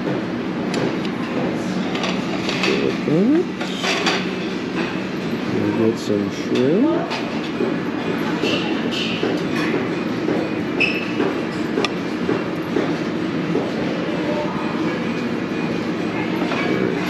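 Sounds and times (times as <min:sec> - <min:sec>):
murmur of voices: 0:13.6 - 0:17.0.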